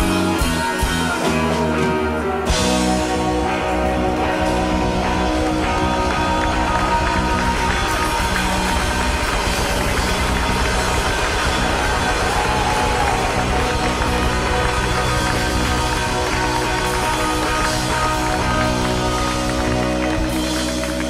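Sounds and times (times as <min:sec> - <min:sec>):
live pop-soul band playing: 0:00.0 - 0:21.0.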